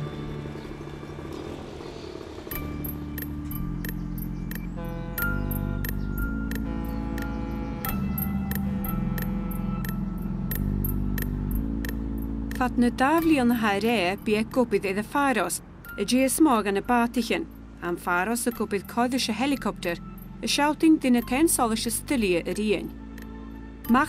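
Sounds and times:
sustained low chords: 0.0s - 24.0s
light ticking percussion: 2.3s - 14.9s, 15.8s - 24.0s.

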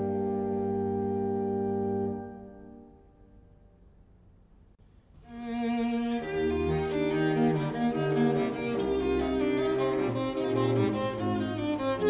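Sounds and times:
faint tape hiss: 0.0s - 12.0s
solo viola bowing: 5.3s - 12.0s.

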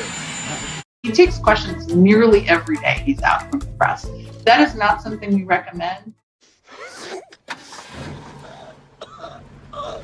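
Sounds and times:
van engine and road noise: 7.5s - 10.0s.

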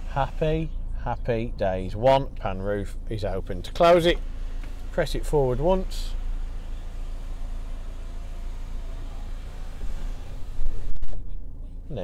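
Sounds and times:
low hum: 3.0s - 12.0s
sunroof motor whining: 3.7s - 11.3s.

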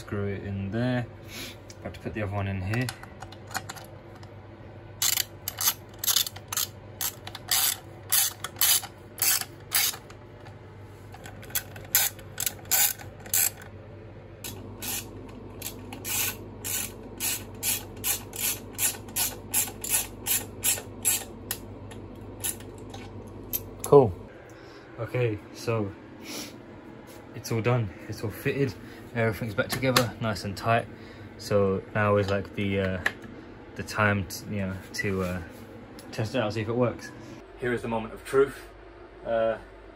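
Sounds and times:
ratchet tool clicking: 5.0s - 10.0s, 11.5s - 13.6s, 14.8s - 21.3s.

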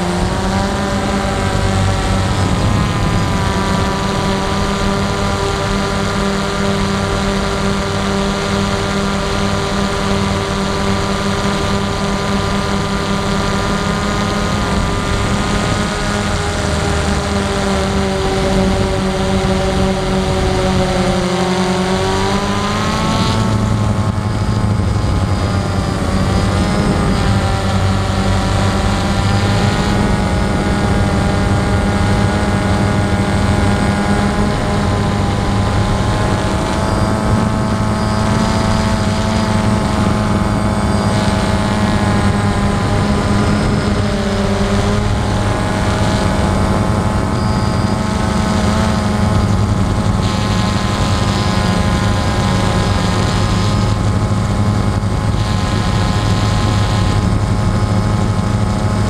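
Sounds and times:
drone motors whining: 0.0s - 59.0s.

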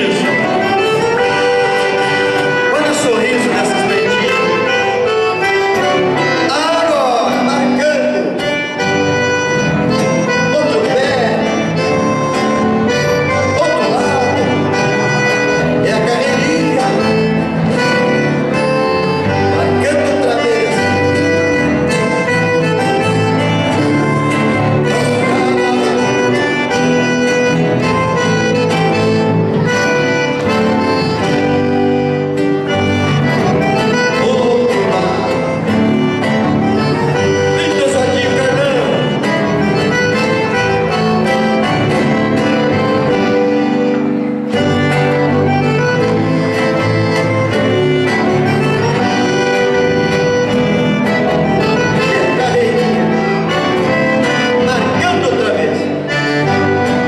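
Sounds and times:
accordion: 0.0s - 57.0s
strummed acoustic guitars: 0.0s - 57.0s.

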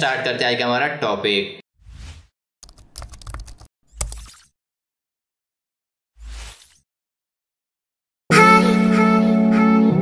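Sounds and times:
keyboard typing: 2.6s - 4.4s.

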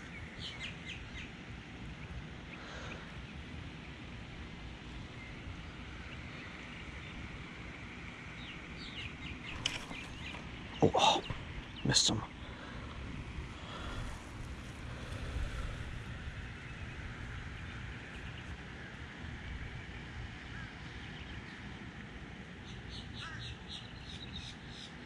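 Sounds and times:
faint bird calls: 2.0s - 4.0s, 8.4s - 19.2s, 19.8s - 21.7s, 22.6s - 25.0s
wind buffeting microphone: 12.9s - 19.9s.

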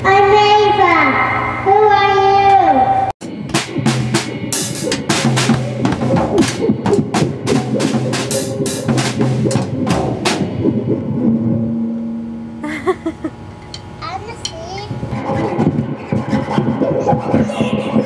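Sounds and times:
child hitting drum kit: 3.2s - 10.7s.

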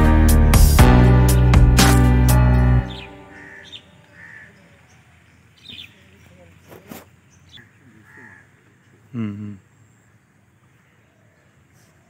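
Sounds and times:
faint birdsong: 2.5s - 12.0s.

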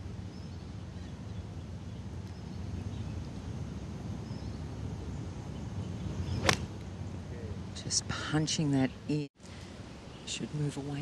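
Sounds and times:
low background hum: 0.0s - 11.0s
golf club striking ball: 6.2s - 6.8s.

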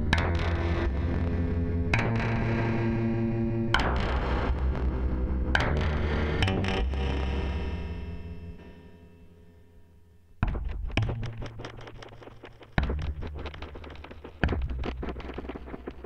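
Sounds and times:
distorted synthesizer drone: 12.8s - 16.0s.

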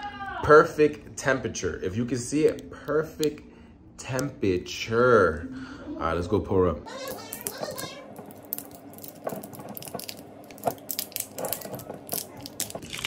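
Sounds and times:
foil capsule crinkling: 7.0s - 13.0s.

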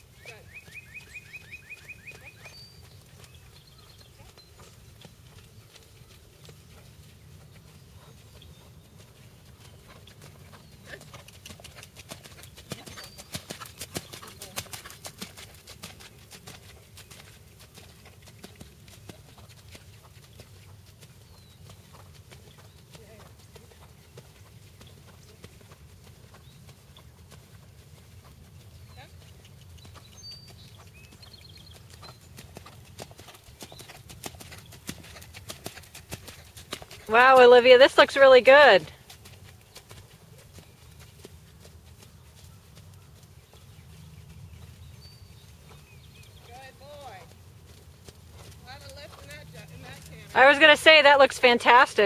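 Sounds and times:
horse hoofbeats on sand: 0.0s - 52.0s.

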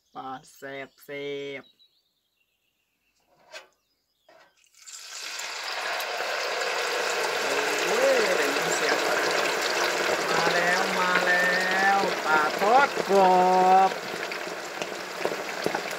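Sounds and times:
oil sizzling in deep fryer: 4.6s - 15.9s.

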